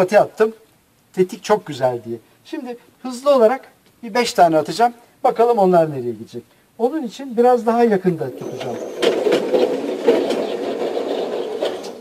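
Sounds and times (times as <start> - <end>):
target carrier motor running: 8.3 - 12.0.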